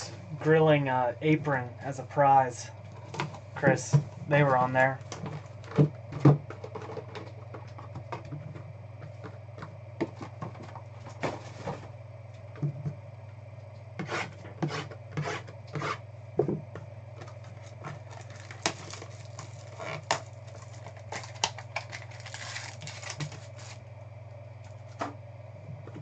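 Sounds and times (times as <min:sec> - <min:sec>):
low electrical hum: 0:00.0 - 0:26.0
foil wrapper crinkling: 0:17.5 - 0:23.8.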